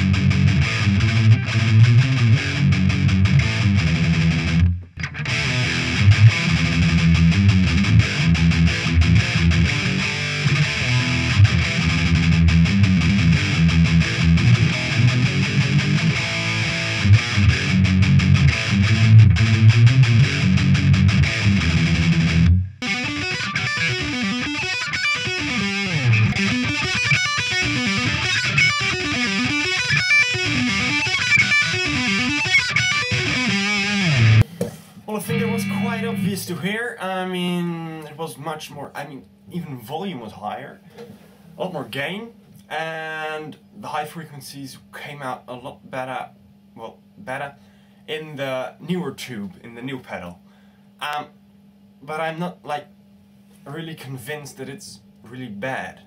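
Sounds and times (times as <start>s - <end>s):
distorted electric guitar riffing: 0.0s - 34.5s, 35.1s - 36.8s.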